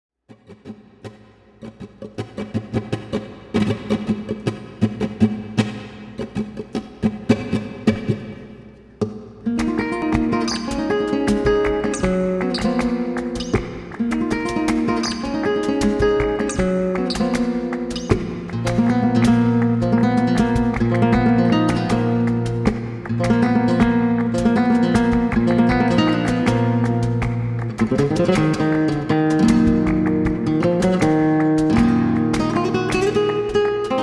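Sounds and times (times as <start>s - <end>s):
flamenco guitar playing: 0.3s - 34.0s.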